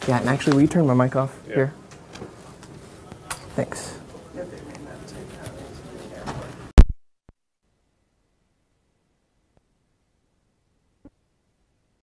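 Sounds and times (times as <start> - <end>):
murmur of people talking: 0.0 - 6.7
room noise: 0.0 - 7.0.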